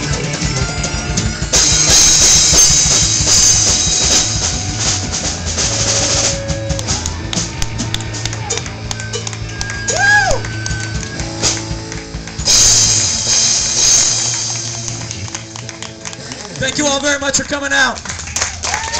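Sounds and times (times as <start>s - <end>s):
live rock band playing: 0.0s - 18.9s
loud cymbal crash: 1.6s - 5.1s, 12.5s - 15.1s.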